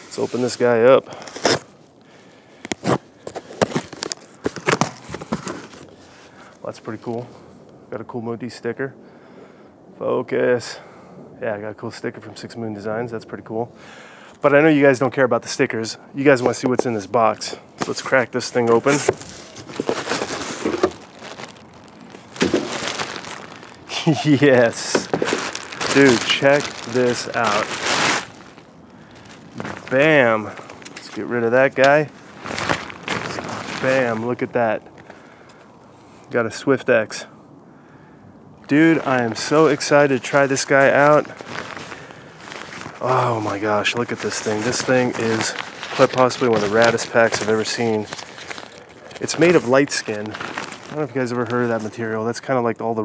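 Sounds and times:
cardboard flaps crinkling: 0.0 - 1.7, 2.7 - 6.1, 16.2 - 35.2, 38.6 - 52.2
packing tape tearing off box: 1.1 - 1.7, 2.7 - 5.9, 17.8 - 23.8, 24.4 - 31.2, 31.8 - 34.3, 44.0 - 51.0.

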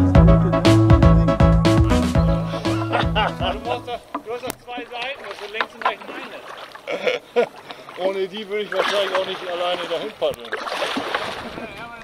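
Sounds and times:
people talking indistinctly: 0.6 - 10.6.

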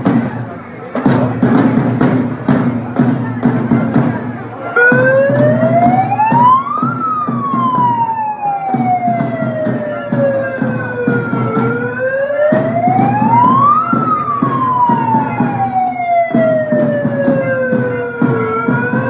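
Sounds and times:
crowd noise: 0.0 - 19.0
wailing siren: 4.7 - 19.0.

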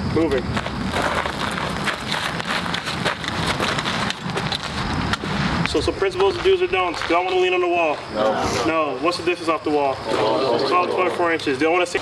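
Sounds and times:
boots crunching on gravel: 0.4 - 8.2.

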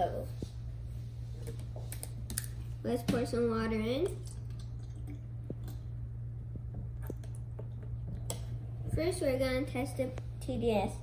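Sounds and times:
steady low hum: 0.0 - 11.0
water pouring into cups: 4.0 - 6.0.

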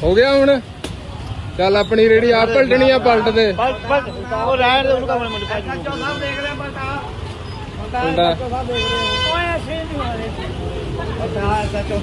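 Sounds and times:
people talking: 0.0 - 12.0
street traffic rumble: 0.0 - 12.0
vehicle horn blast: 8.7 - 9.5.

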